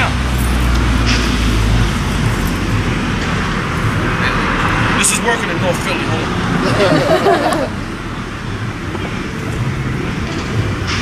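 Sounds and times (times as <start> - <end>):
cars passing: 0.0 - 11.0
low vehicle rumble: 0.0 - 11.0.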